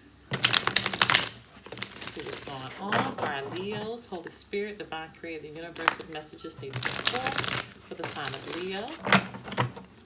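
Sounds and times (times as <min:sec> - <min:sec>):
cards being shuffled: 0:00.3 - 0:03.9, 0:05.6 - 0:09.3.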